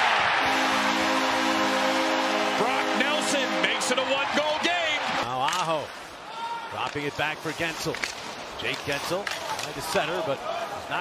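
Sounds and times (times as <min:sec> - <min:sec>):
crowd cheering: 0:00.0 - 0:06.8
arena goal horn: 0:00.4 - 0:05.2
arena music: 0:00.4 - 0:05.2
voices shouting: 0:02.4 - 0:05.4.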